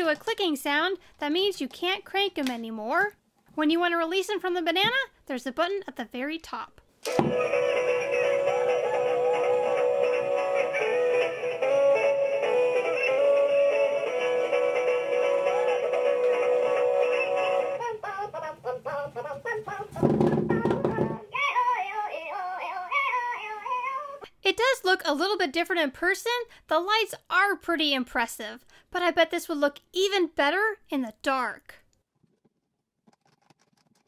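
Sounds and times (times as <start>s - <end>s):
electronic toy song: 7.3s - 17.9s
wavering sung voice: 7.6s - 24.3s.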